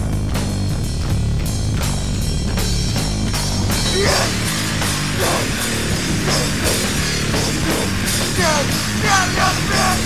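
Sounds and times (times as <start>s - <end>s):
distorted guitar and bass: 0.0s - 10.0s
drums: 0.0s - 10.0s.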